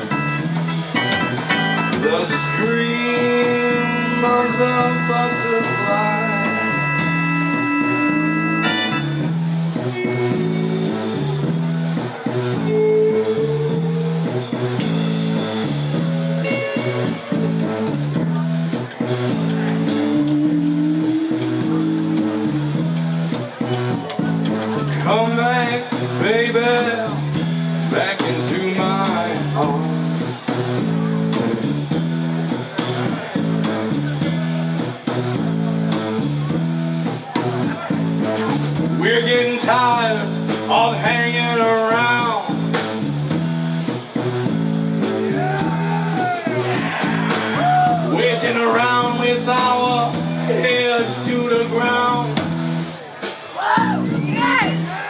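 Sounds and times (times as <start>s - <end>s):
low bass line: 0.0s - 53.1s, 53.8s - 55.0s
rock band playing: 0.0s - 55.0s.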